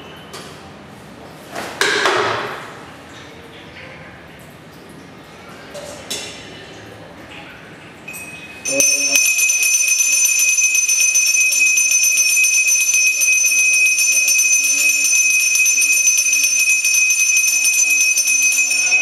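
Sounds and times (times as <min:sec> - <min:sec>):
hand bell ringing rapidly: 0:08.2 - 0:19.0.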